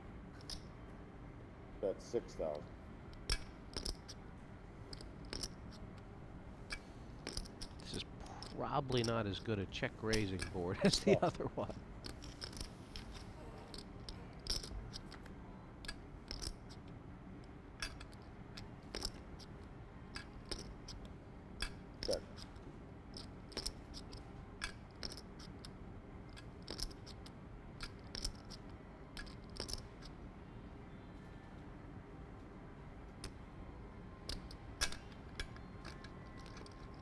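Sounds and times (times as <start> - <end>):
faint room hum: 0.0 - 37.0
poker chips clicking: 12.0 - 15.2, 15.8 - 16.6, 23.2 - 25.5, 26.4 - 28.6, 29.2 - 30.1, 34.3 - 37.0.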